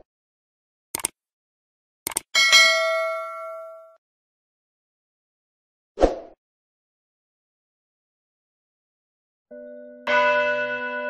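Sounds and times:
mouse clicks: 0:01.0 - 0:01.2, 0:02.1 - 0:02.3
bell ding: 0:02.4 - 0:04.0, 0:09.5 - 0:11.0.

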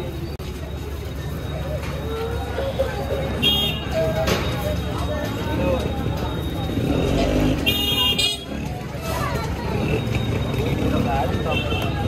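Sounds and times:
street traffic noise: 0:00.0 - 0:12.0
voices: 0:00.0 - 0:12.0.

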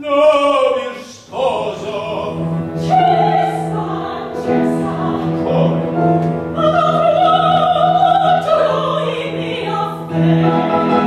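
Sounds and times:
operatic singing: 0:00.0 - 0:11.0
musical accompaniment: 0:01.3 - 0:11.0.

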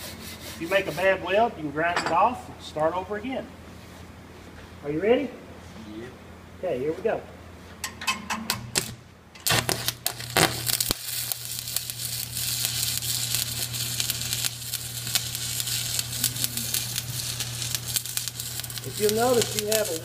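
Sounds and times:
welding arc crackling sizzle: 0:07.8 - 0:20.0
electrode scratching steel plate: 0:08.5 - 0:20.0.

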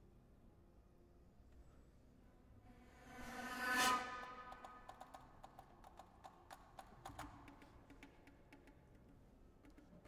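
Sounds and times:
contemporary ensemble music: 0:02.6 - 0:10.0
sparse clicks and taps: 0:04.9 - 0:10.0.

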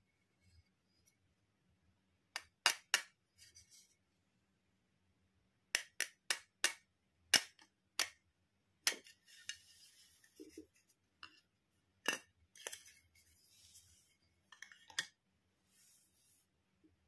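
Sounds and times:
soft handling rustle: 0:12.6 - 0:14.9.

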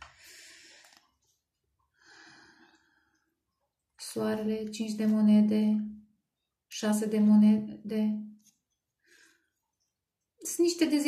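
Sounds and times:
faint breath: 0:00.0 - 0:01.0, 0:01.9 - 0:03.4, 0:09.0 - 0:09.7.

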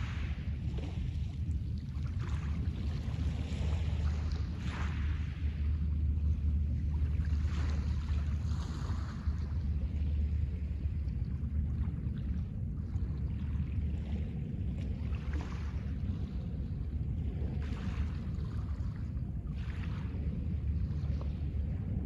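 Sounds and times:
wind rumble on microphone: 0:00.0 - 0:22.0.

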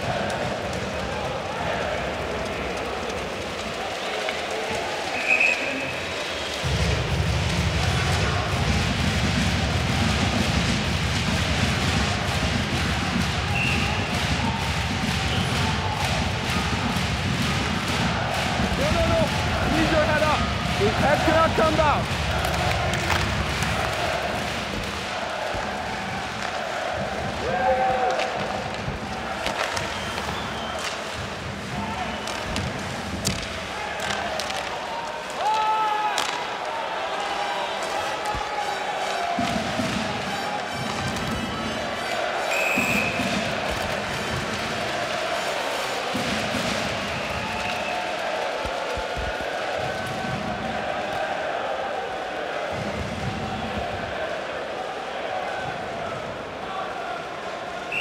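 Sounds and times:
crowd murmur: 0:00.0 - 0:58.0
sticks clacking on puck: 0:27.9 - 0:31.2, 0:32.2 - 0:36.8
puck thudding against boards: 0:28.1 - 0:31.1.

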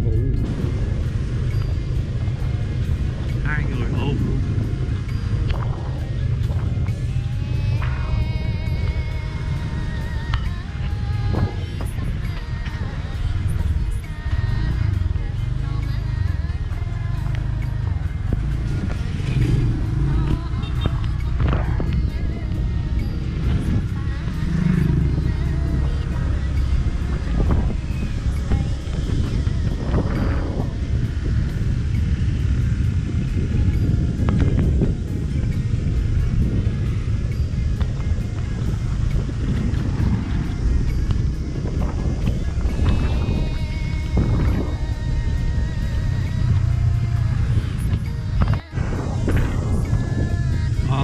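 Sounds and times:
motorbike road rumble: 0:00.0 - 0:51.0
music playing: 0:00.0 - 0:51.0
wind: 0:00.0 - 0:51.0.

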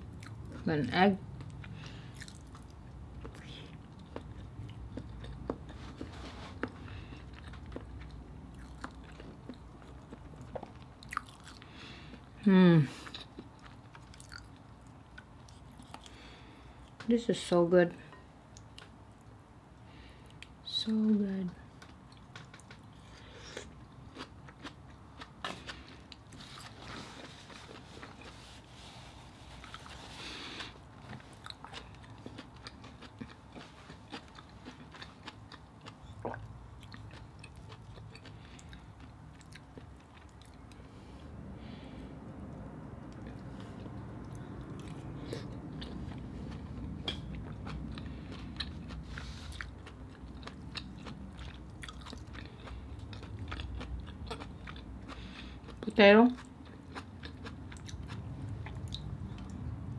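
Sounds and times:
person chewing and mouth smacks: 0:01.3 - 0:12.4, 0:13.0 - 0:17.0, 0:21.8 - 0:41.0, 0:42.5 - 0:59.8.

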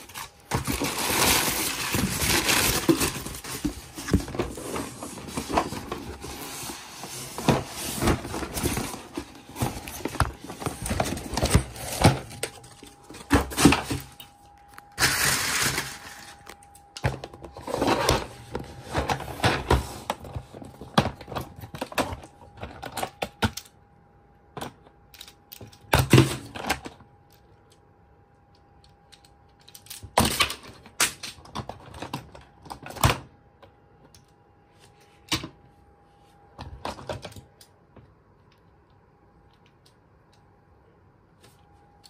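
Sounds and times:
cardboard rustling scrapes: 0:00.1 - 0:12.3
packaging knocks and thumps: 0:07.3 - 0:14.2
clicks and knocks in plastic toolbox: 0:29.2 - 0:33.7.

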